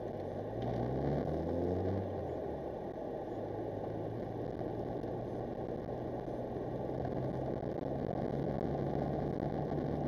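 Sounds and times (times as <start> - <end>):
road rumble: 0.0 - 10.0.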